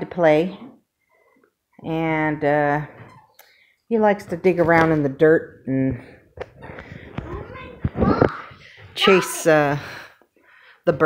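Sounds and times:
young child's voice: 7.2 - 9.4.

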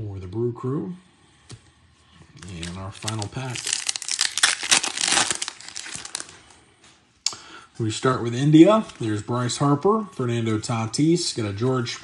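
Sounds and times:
wrapper tearing and crinkling: 2.4 - 6.4.

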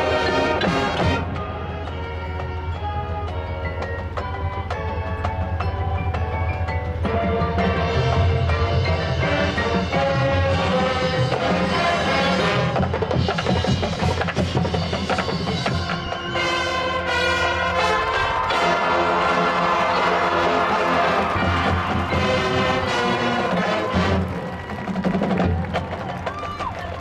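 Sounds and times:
drums and percussion: 0.0 - 27.0
marching band playing: 0.0 - 27.0.

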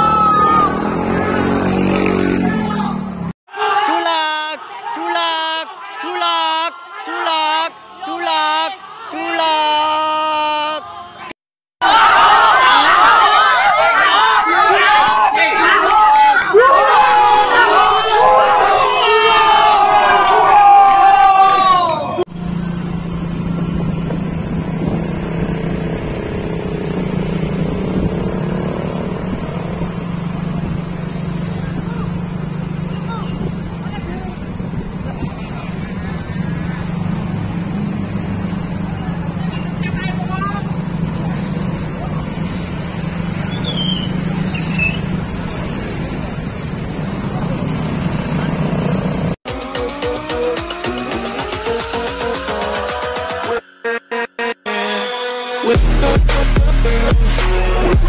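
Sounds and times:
motorcycle engines droning: 0.0 - 3.4, 11.9 - 53.7
road noise: 0.0 - 58.0
electronic music: 49.5 - 58.0.

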